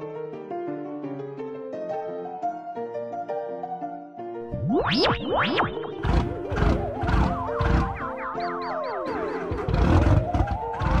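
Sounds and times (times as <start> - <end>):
music: 0.0 - 11.0
tones sliding downward: 4.5 - 10.8
warbling climbing tone: 4.5 - 11.0.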